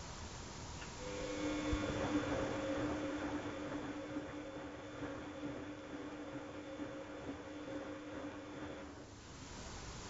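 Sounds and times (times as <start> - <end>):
washing machine motor hum: 1.0 - 9.0.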